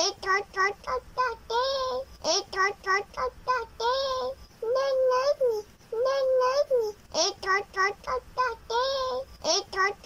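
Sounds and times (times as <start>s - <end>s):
high-pitched child-like singing: 0.0s - 10.0s.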